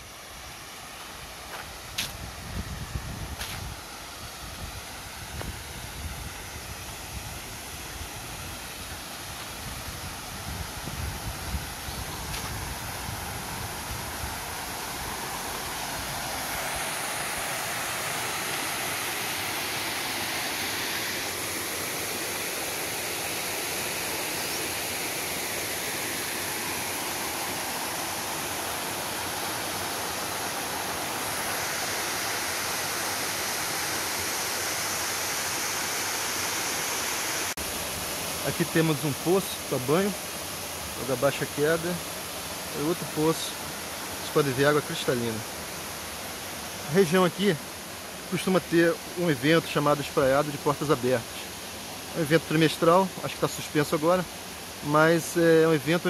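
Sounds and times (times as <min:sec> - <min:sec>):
small waterfall rushing: 0:00.0 - 0:56.0.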